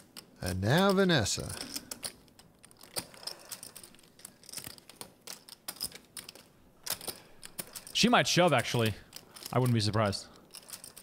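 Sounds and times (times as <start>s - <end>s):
poker chips clicking: 0.0s - 11.0s.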